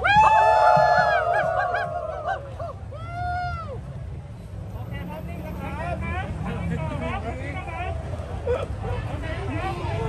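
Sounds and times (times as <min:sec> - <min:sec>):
people yipping: 0:00.0 - 0:03.6.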